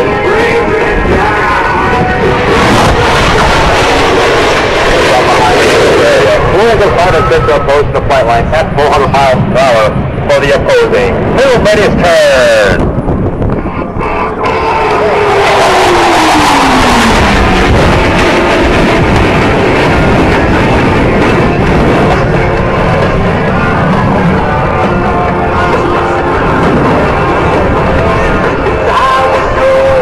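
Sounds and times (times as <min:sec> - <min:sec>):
music: 0:00.0 - 0:03.0, 0:19.8 - 0:30.0
jets passing low roar: 0:00.0 - 0:30.0.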